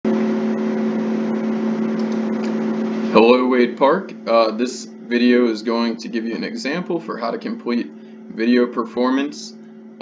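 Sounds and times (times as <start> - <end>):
low hum of held tones: 0.1 - 10.0.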